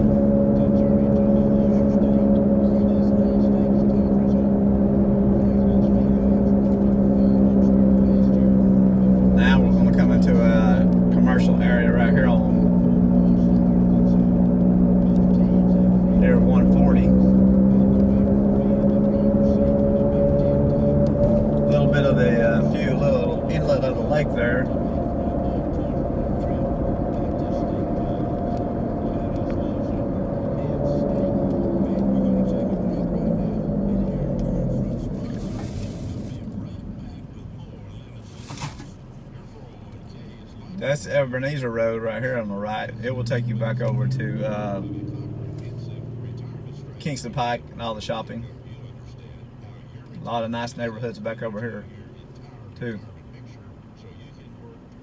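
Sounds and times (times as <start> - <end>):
car engine hum: 0.0 - 55.0
road noise: 0.0 - 55.0.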